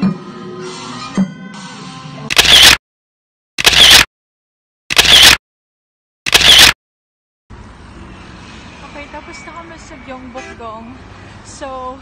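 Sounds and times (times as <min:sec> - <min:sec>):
city street traffic hum: 0:07.5 - 0:12.0.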